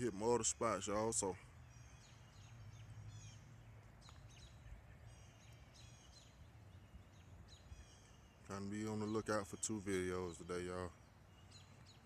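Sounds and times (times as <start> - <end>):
faint birds chirping: 0.0 - 12.0
low steady outdoor rumble: 0.0 - 12.0.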